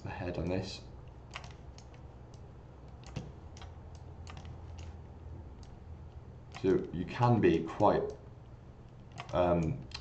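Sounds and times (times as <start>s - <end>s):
faint low hum: 0.0s - 10.0s
computer input clicks: 1.2s - 5.0s, 9.0s - 10.0s.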